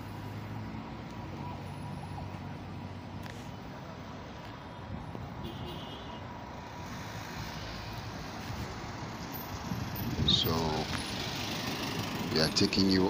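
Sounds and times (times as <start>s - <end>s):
hum of road traffic: 0.0s - 13.0s
truck passing close: 6.5s - 13.0s.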